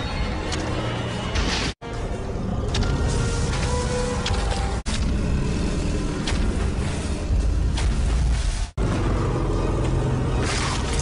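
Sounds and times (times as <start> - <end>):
film soundtrack with low rumble: 0.0 - 11.0.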